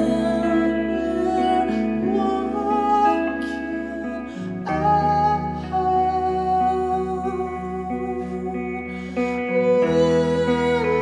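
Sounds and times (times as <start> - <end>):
guitar chords ringing: 0.0 - 11.0
held bass guitar notes: 0.0 - 11.0.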